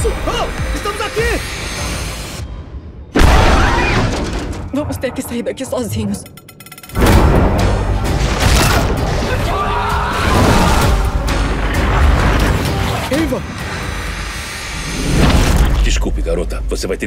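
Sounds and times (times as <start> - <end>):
loud dense trailer music: 7.0 - 17.0.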